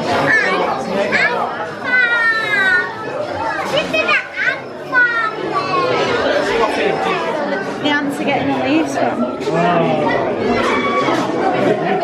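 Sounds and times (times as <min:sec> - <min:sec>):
children talking and calling out: 0:00.0 - 0:12.0
general chatter: 0:00.0 - 0:12.0.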